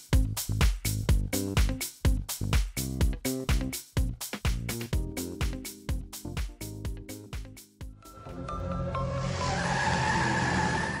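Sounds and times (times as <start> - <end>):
tyres screeching: 9.0 - 11.0.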